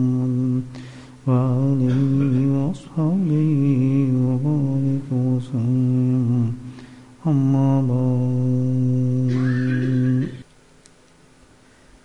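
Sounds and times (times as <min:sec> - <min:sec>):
man chanting in held notes: 0:00.0 - 0:10.4.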